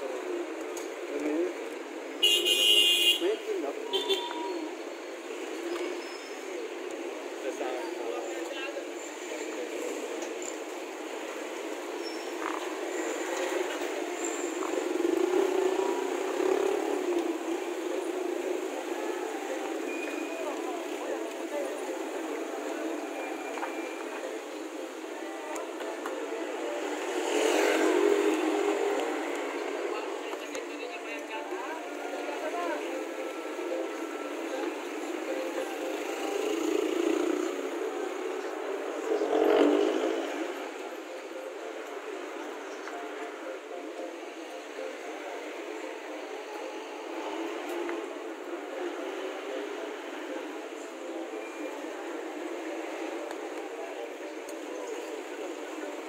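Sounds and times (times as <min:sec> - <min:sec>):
passing motor vehicles rumble: 0:04.6 - 0:56.0.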